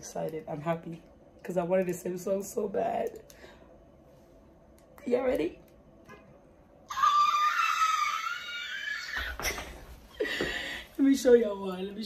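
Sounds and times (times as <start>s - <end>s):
woman squealing excitedly: 6.9s - 9.7s.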